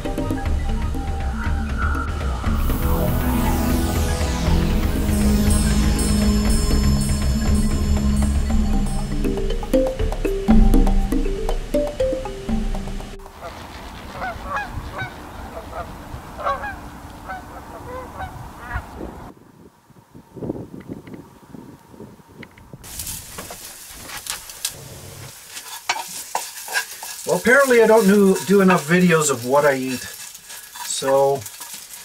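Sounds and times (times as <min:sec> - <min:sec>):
background music: 0:00.0 - 0:13.4
food sizzling in a pan: 0:02.6 - 0:11.9, 0:22.8 - 0:32.0.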